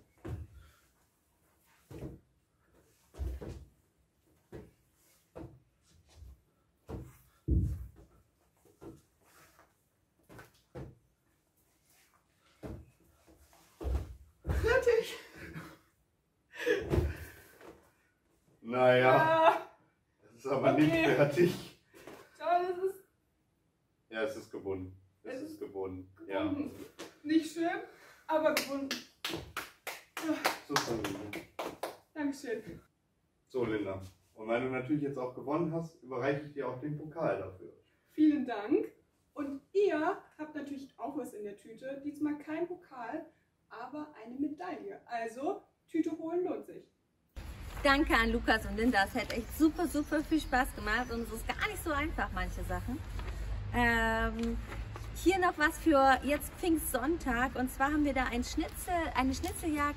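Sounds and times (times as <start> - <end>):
person clapping: 28.6 - 32.0
people talking: 47.7 - 53.0, 53.8 - 54.6, 55.2 - 59.9.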